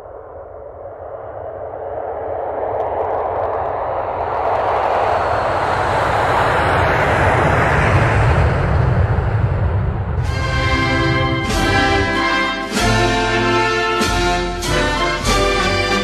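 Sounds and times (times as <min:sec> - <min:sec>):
deep rumble: 0:00.0 - 0:12.8
rushing roar: 0:03.6 - 0:16.0.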